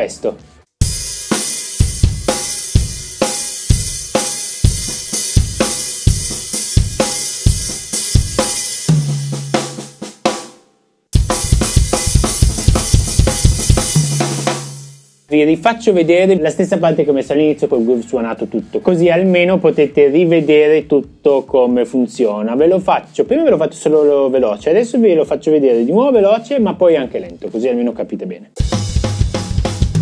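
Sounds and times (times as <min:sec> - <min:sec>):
bass drum: 0:00.8 - 0:10.5, 0:11.1 - 0:15.0, 0:28.6 - 0:30.0
cymbals: 0:00.8 - 0:10.5, 0:11.2 - 0:15.3
snare drum strokes: 0:11.2 - 0:15.1.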